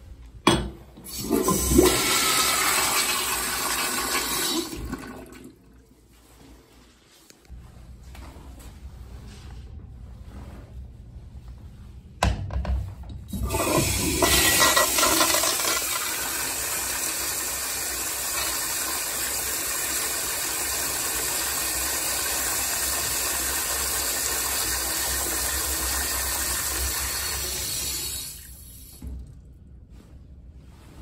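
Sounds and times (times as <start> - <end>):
toilet flushing: 1.0 - 5.8, 13.3 - 29.2.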